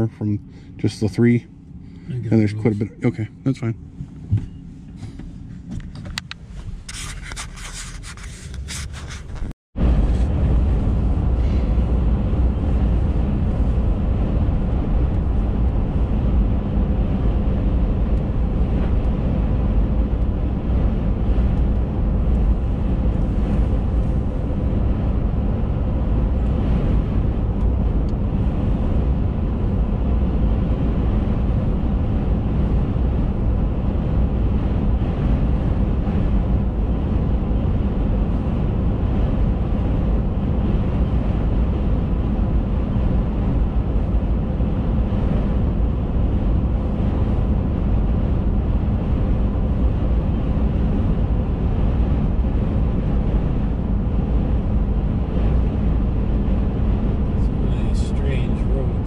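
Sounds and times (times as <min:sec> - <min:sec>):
faint steady hum: 0:00.0 - 0:59.0
vehicle road and engine rumble: 0:00.0 - 0:59.0.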